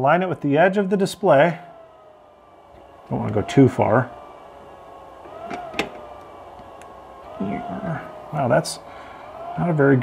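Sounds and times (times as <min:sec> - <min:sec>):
cooling fan whining: 0:00.0 - 0:10.0.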